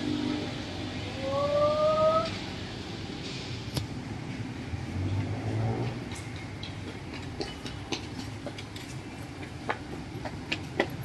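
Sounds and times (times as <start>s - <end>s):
low steady street rumble: 0.0s - 11.0s.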